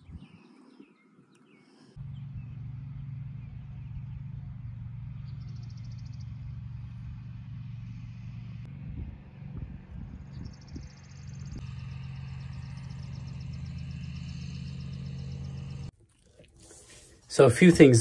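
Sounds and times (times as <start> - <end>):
engine idling hum: 0.0 - 18.0.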